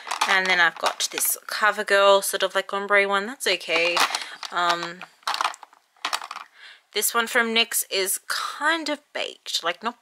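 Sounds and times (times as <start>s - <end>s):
plastic compacts clicking and clattering: 0.0s - 1.4s, 3.7s - 6.5s.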